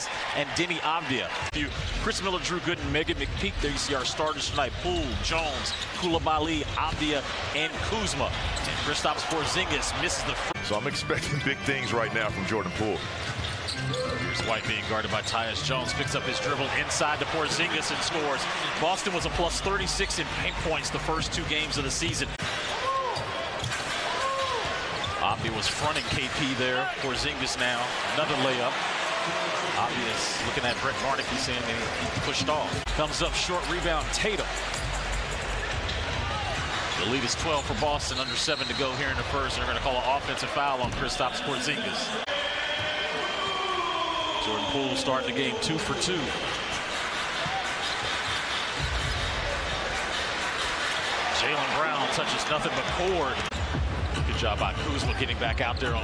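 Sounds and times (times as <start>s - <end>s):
arena crowd noise: 0.0s - 56.0s.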